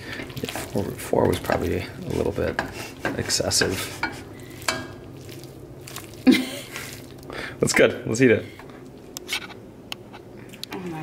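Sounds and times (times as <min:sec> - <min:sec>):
utensil scraping a pot: 0:00.0 - 0:06.2
utensil stirring macaroni: 0:00.0 - 0:09.5.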